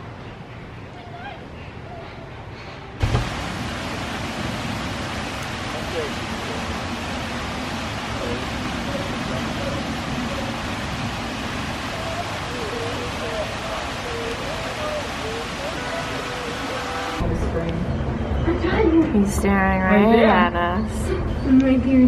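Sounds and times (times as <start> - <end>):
steady rushing hiss: 2.6 - 17.2
thump: 3.0 - 3.4.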